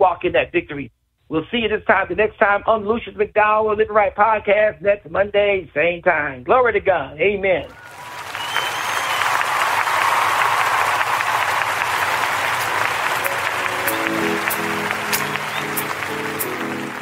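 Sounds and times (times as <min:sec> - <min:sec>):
audience applause: 0:07.7 - 0:17.0
instrumental intro with sustained chords: 0:12.0 - 0:17.0.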